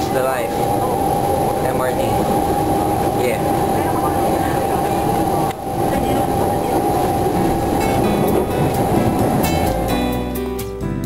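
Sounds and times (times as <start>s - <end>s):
train wheels rumbling on rail: 0.0s - 10.6s
train whine: 0.0s - 10.8s.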